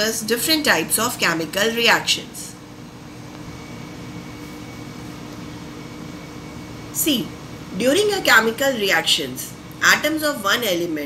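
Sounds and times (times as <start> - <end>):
machine hum and hiss: 0.0 - 11.0.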